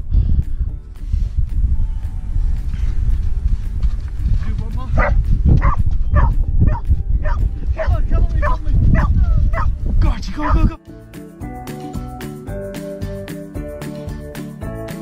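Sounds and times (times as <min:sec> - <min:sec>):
wind buffeting microphone: 0:00.0 - 0:10.8
dog barking: 0:05.0 - 0:09.7.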